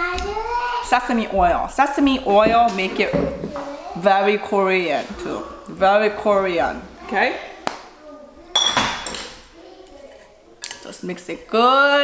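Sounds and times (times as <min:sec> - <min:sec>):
kitchenware clatter: 0:08.5 - 0:09.5.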